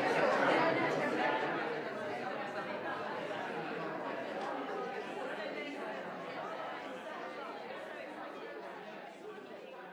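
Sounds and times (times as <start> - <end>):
hubbub of many people talking: 0.0 - 9.9.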